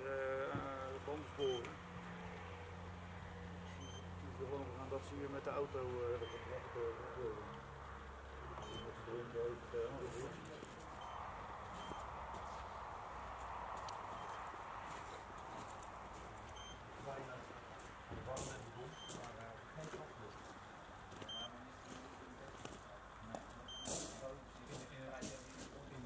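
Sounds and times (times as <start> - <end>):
muffled talking: 4.2 - 7.6, 8.4 - 11.0, 17.0 - 26.0.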